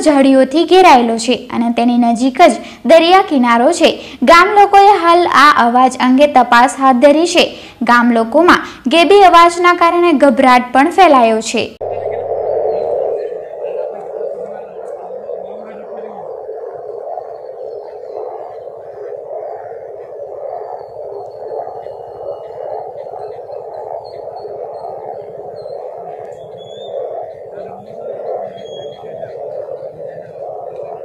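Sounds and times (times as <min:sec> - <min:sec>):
continuous droning noise: 0:00.0 - 0:31.0
faint high chirps: 0:11.8 - 0:31.0.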